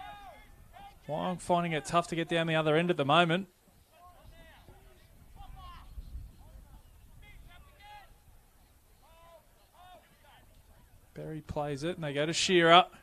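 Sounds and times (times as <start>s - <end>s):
distant players shouting: 0.0s - 2.6s, 3.8s - 8.4s
wind rumble on microphone: 4.2s - 8.4s.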